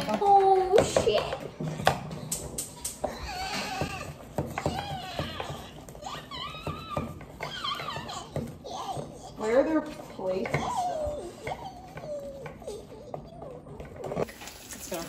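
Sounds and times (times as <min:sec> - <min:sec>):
young women talking: 0:00.0 - 0:01.5, 0:09.4 - 0:11.0.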